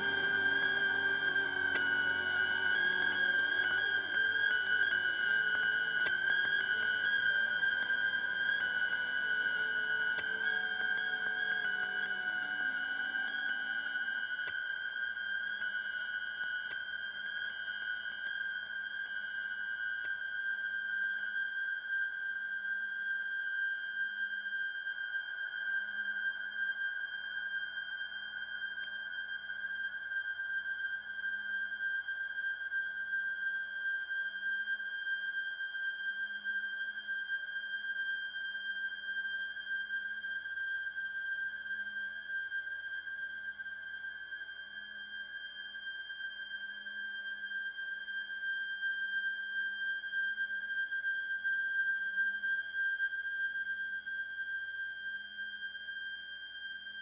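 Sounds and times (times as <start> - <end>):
low pulsing note: 0.0 - 4.8
electric guitar drone: 0.0 - 14.5.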